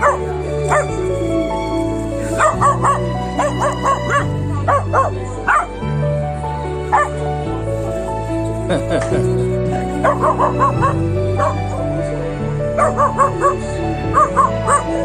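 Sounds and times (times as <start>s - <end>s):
puppy barking: 0.0s - 1.0s, 2.4s - 5.7s, 6.9s - 7.2s, 10.0s - 11.8s, 12.8s - 15.0s
background music: 0.0s - 15.0s.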